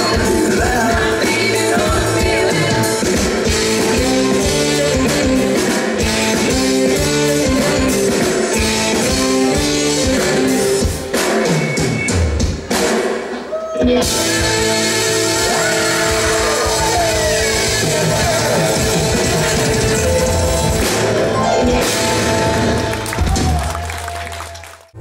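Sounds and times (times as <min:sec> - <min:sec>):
live rock band playing: 0:00.0 - 0:24.1.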